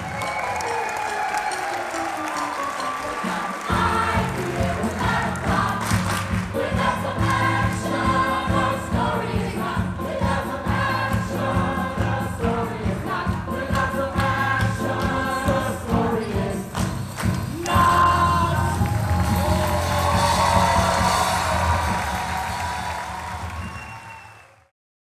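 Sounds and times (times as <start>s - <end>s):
keyboard: 0.0s - 23.6s
cast singing together: 3.1s - 17.0s
bass and drums dance beat: 3.7s - 23.8s.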